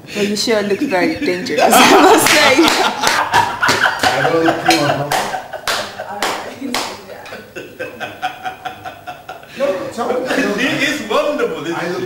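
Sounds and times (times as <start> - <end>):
people laughing: 0.5 - 12.0
hands clapping: 2.1 - 7.1.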